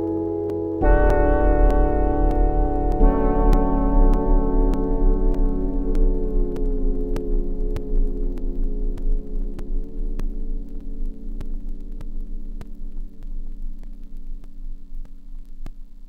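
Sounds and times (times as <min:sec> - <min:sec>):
synthesizer sustained chord: 0:00.0 - 0:14.1
faint clicks: 0:00.0 - 0:16.0
low electrical hum: 0:00.0 - 0:16.0.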